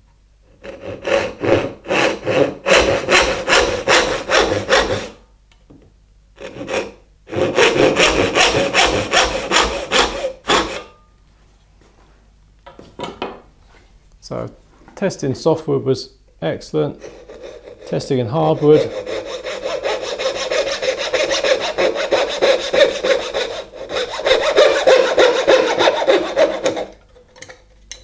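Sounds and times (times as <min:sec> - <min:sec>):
hand saw cutting wood: 0:00.6 - 0:05.2, 0:06.4 - 0:10.9, 0:17.0 - 0:27.0.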